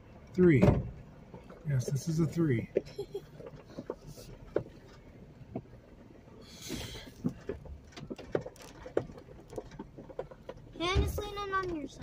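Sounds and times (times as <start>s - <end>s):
low engine rumble: 0.0s - 12.0s
knocks and creaks from vehicle body: 0.5s - 12.0s.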